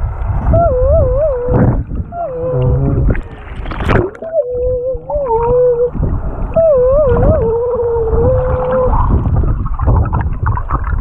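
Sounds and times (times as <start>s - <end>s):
low rush of water: 0.0s - 11.0s
wavering underwater hum tone: 0.0s - 11.0s.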